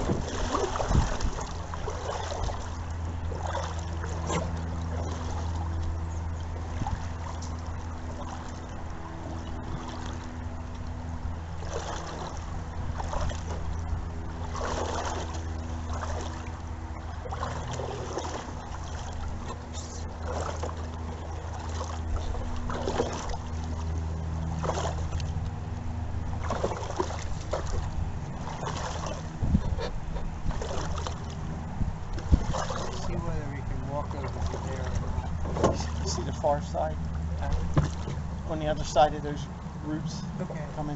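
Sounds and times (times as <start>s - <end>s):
canoe paddles dipping in water: 0.0s - 40.9s
steady low hum: 0.0s - 40.9s.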